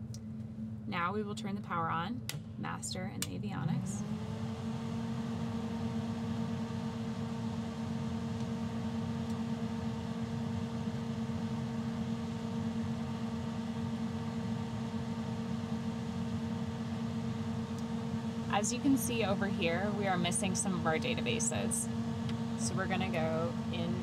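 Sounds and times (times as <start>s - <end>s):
avionics humming: 0.0s - 24.0s.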